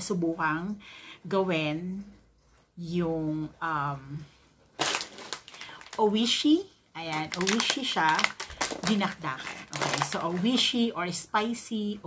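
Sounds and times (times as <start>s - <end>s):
plastic snack bag crinkling: 4.7s - 10.8s.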